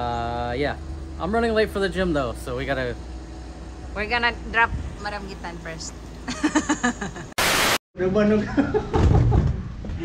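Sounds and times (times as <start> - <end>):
person laughing: 6.3 - 7.3
loud static hiss: 7.4 - 7.8.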